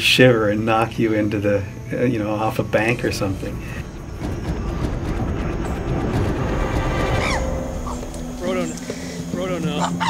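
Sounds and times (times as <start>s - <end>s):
chimpanzee call: 7.2s - 10.0s.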